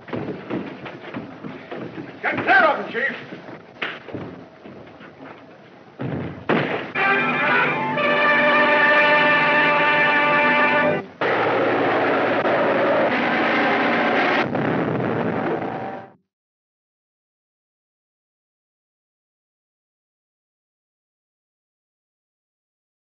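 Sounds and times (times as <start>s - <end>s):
film score music: 6.8s - 14.4s.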